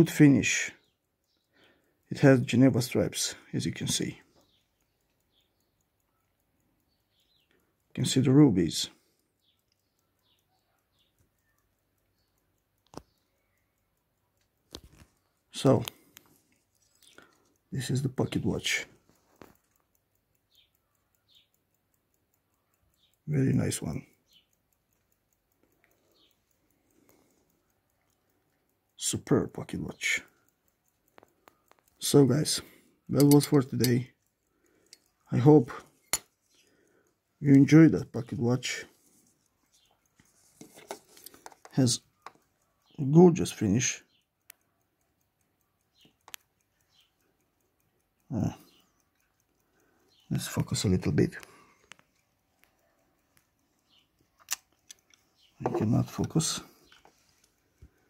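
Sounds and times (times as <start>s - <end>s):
pocket watch ticking: 0.0s - 58.0s
sharp watch clicks: 0.0s - 58.0s.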